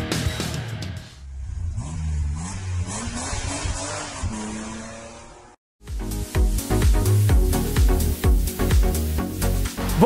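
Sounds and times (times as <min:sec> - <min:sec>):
car engine revving: 0:01.1 - 0:05.6.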